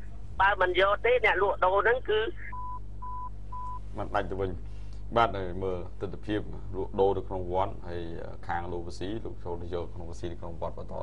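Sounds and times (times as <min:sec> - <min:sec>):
low steady hum: 0:00.0 - 0:11.0
short electronic beeps: 0:02.5 - 0:03.9.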